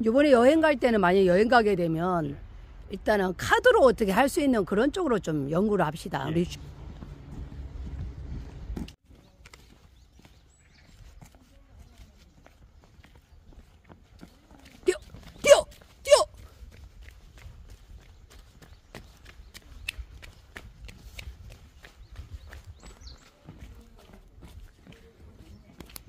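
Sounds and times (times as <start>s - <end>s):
footsteps on brick paving: 6.2s - 26.0s.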